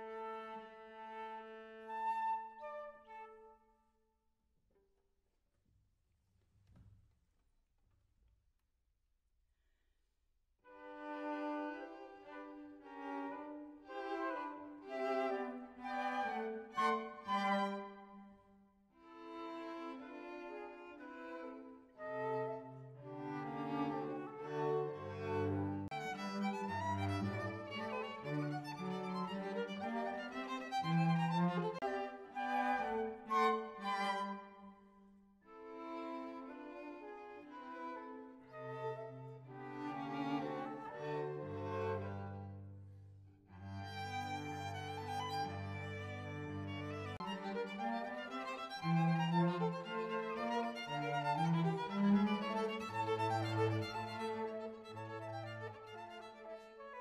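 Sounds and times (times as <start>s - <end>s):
violin: 0.0s - 3.5s, 10.7s - 18.3s, 19.0s - 57.0s
cello: 0.0s - 3.7s, 10.7s - 57.0s
flute: 0.0s - 3.8s, 29.4s - 34.7s
chamber music trio: 10.9s - 18.1s, 19.1s - 34.6s, 35.5s - 42.7s, 43.6s - 57.0s.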